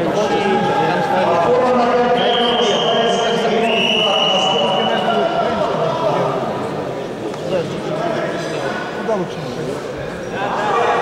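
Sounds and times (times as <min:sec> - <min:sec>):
men's voices overlapping: 0:00.0 - 0:11.0.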